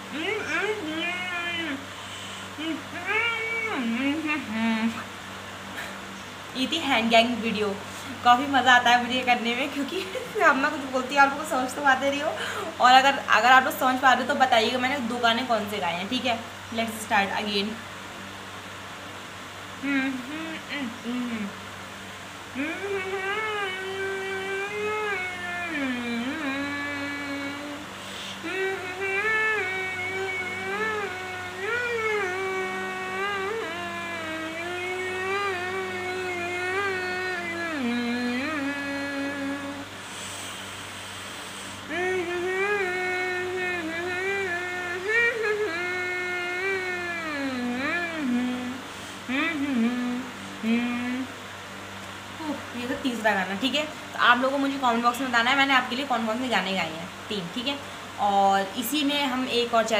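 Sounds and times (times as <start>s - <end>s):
woman humming muffled: 0.0s - 17.8s, 19.6s - 51.4s, 52.3s - 54.7s.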